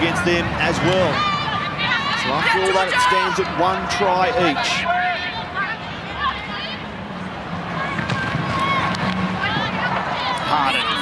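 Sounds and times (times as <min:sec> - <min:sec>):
crowd hum: 0:00.0 - 0:11.0
players calling and shouting: 0:00.0 - 0:11.0.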